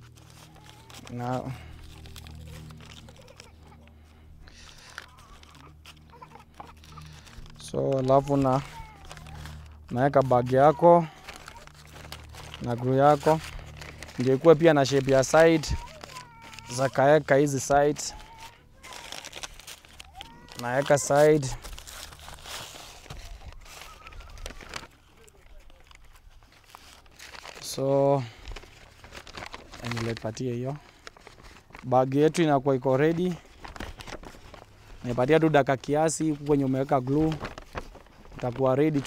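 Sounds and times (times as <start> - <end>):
paper bag crinkling: 0.0 - 39.0
small paper crackles: 0.0 - 39.0.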